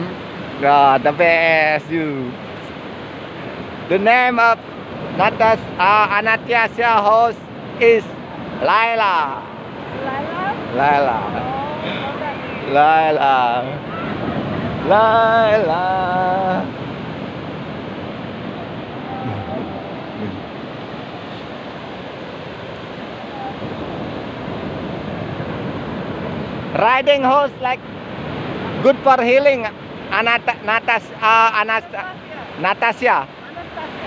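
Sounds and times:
ocean surf: 0.0s - 34.0s
wind on microphone: 13.6s - 26.8s
person speaking: 19.1s - 20.5s.

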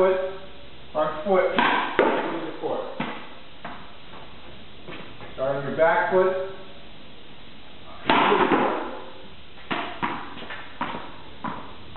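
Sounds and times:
room hiss: 0.0s - 11.9s
sharp knocks: 1.6s - 2.4s.

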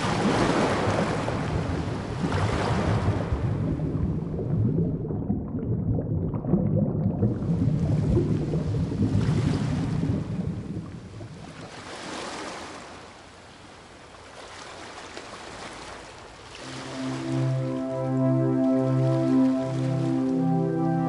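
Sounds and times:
ocean water rushing: 0.0s - 5.5s, 7.2s - 21.0s
muffled underwater bubbles: 0.0s - 11.7s.

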